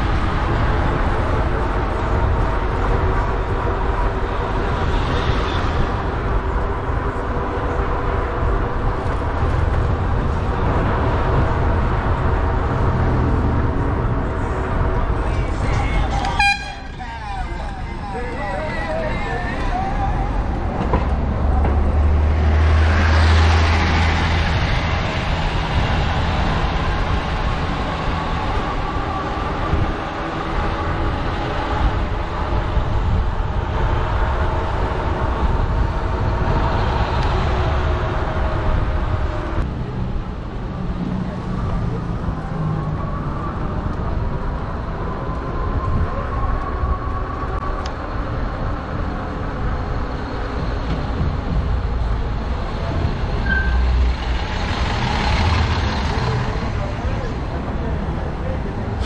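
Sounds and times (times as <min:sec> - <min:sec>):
wind rush: 0:00.0 - 0:16.6, 0:19.5 - 0:59.0
road rumble: 0:00.0 - 0:59.0.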